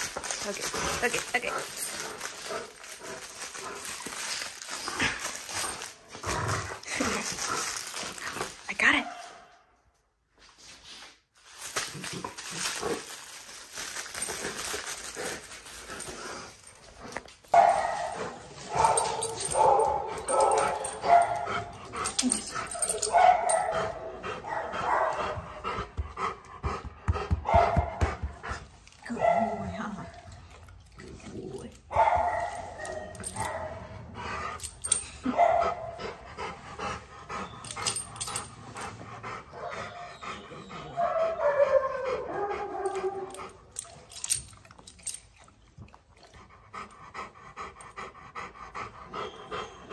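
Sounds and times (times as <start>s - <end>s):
dog barking and howling: 39.5s - 43.6s.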